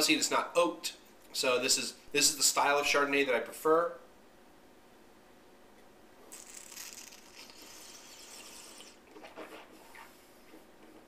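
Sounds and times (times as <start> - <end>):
person slurping wine: 6.3 - 10.1.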